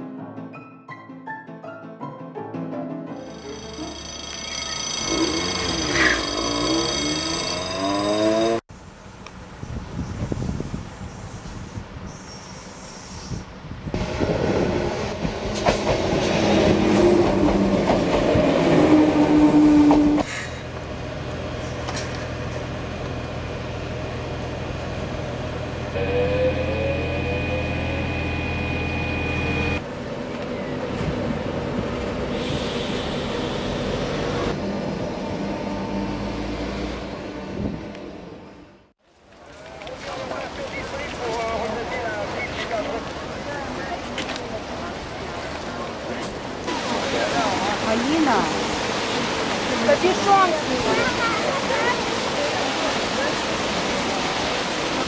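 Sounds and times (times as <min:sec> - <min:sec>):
steady high tone: 0:03.2 - 0:08.6, 0:26.0 - 0:29.8
electric train motor whine: 0:03.3 - 0:08.1, 0:22.6 - 0:29.8, 0:32.4 - 0:38.7.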